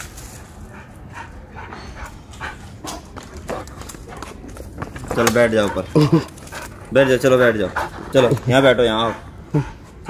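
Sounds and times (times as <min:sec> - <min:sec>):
dog panting: 0:00.6 - 0:10.0.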